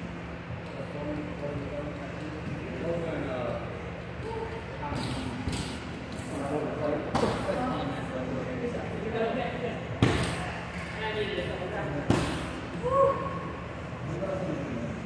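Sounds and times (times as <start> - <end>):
heavy thuds on punching bag: 12.1 - 12.5.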